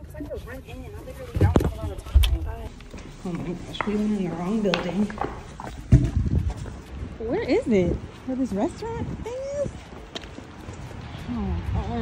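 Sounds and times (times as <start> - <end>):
footsteps on wet brick paving: 0.0 - 12.0.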